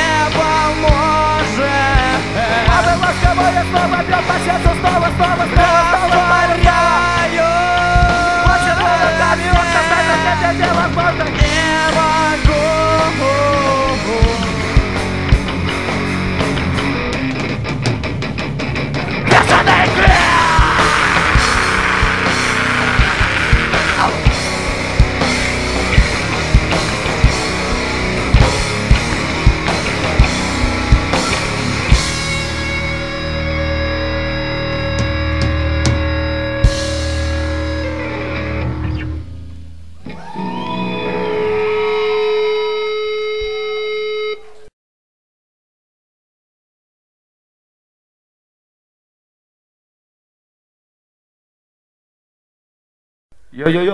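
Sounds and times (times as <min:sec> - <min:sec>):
drum kit: 0:00.0 - 0:41.2
live rock band playing: 0:00.0 - 0:44.6
distorted electric guitars: 0:00.0 - 0:44.7.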